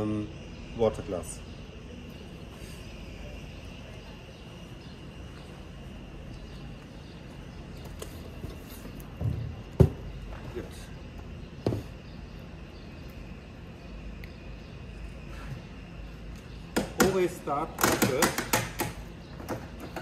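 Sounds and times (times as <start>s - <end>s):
steady low hum: 0.0s - 17.8s.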